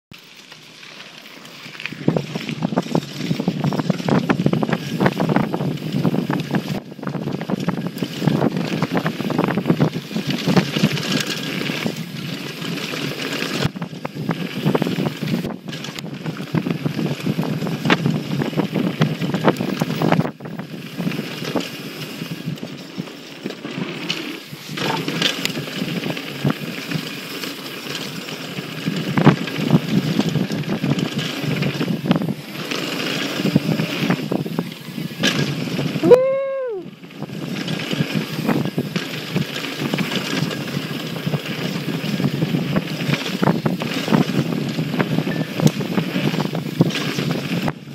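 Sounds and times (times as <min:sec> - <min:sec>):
tyre noise on dirt: 0:00.1 - 0:47.9
wind rush over microphone: 0:01.8 - 0:27.2, 0:28.1 - 0:47.9
bike knocks and rattles: 0:01.9 - 0:36.1, 0:37.1 - 0:47.9.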